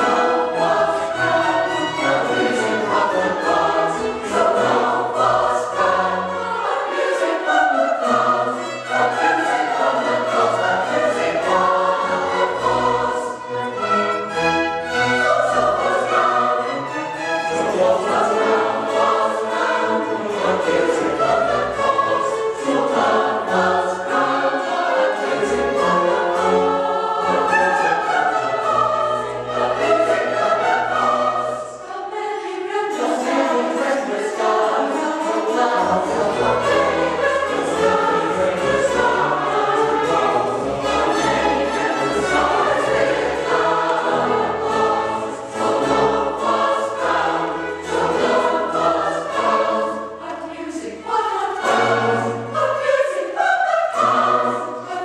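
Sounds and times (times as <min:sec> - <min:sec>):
mixed choir singing: 0:00.0 - 0:55.0
string orchestra: 0:00.0 - 0:55.0.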